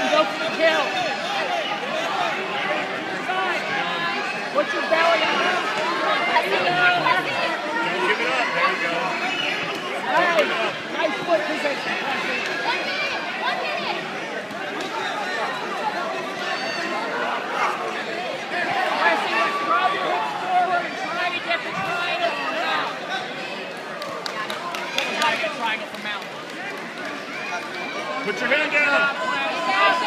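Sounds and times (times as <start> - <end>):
crowd babble: 0.0 - 30.0.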